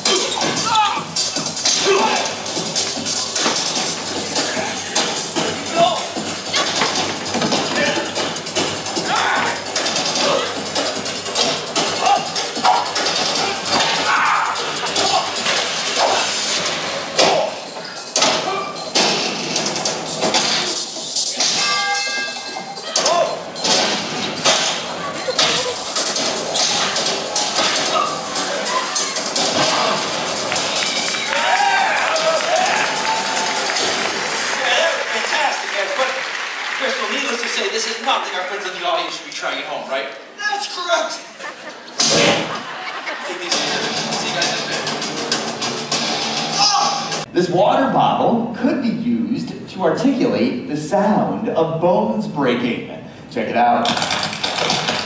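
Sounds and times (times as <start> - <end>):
loud dramatic music: 0.0 - 35.8, 42.0 - 47.6.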